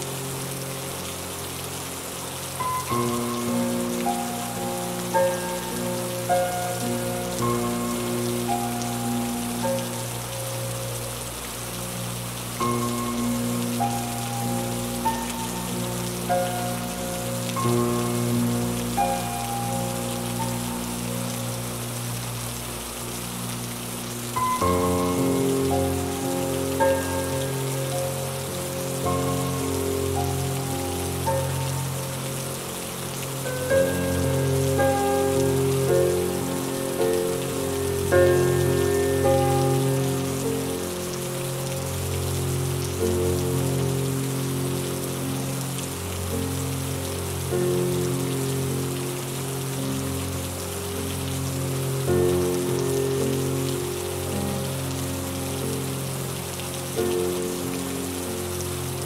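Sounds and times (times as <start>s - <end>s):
calm instrumental music: 0.0s - 59.0s
steady rain falling: 0.0s - 59.0s.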